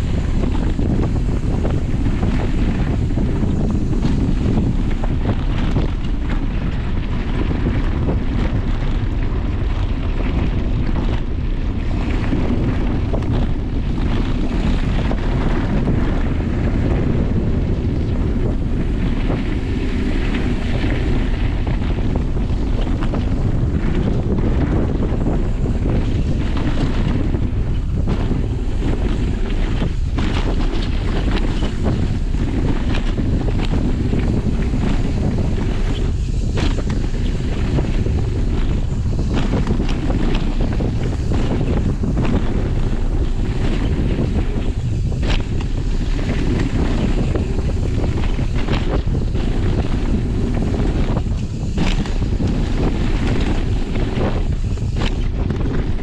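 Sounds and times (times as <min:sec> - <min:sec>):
bike rattling over stones: 0:00.0 - 0:56.0
deep rumble of bike riding: 0:00.0 - 0:56.0
wind buffeting microphone: 0:00.0 - 0:56.0.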